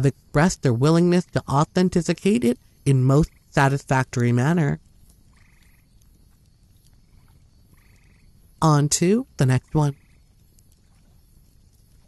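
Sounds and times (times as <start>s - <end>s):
low hiss: 0.0s - 12.0s
trilled animal call: 5.2s - 6.0s, 6.9s - 8.4s.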